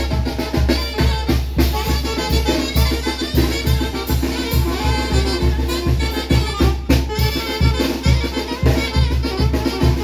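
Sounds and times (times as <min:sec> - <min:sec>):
bass drum beat: 0:00.0 - 0:10.0
brass instruments playing melody: 0:00.0 - 0:10.0.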